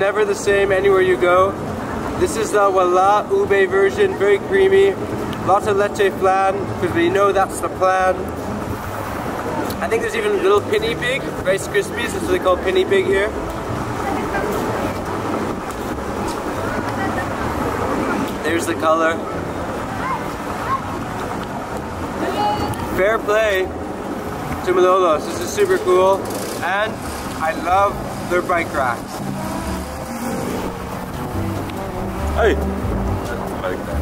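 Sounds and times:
faint voices: 0.0 - 34.0
low traffic rumble: 0.0 - 34.0.

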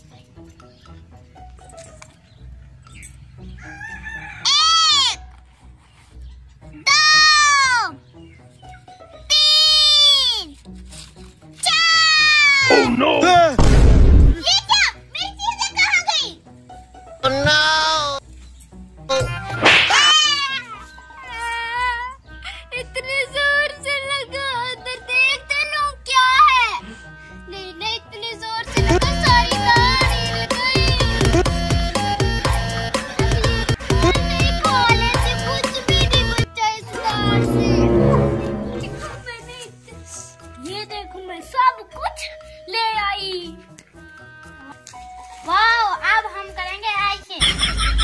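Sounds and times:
faint background music: 0.0 - 48.0.

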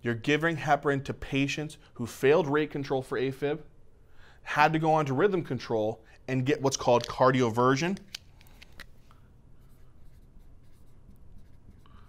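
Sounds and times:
marker writing on a whiteboard: 9.6 - 12.0.

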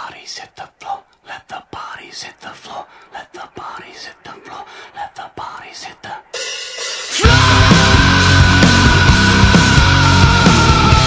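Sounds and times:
person whispering: 0.0 - 6.4.

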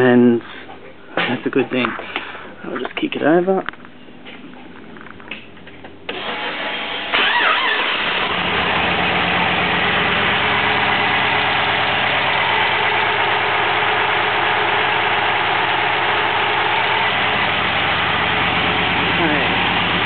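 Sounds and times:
car engine starting and idling: 5.6 - 20.0.

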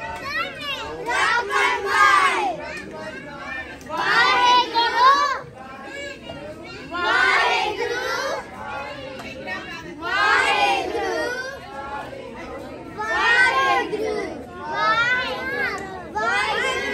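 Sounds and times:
children and adults reciting prayer: 0.0 - 16.9.

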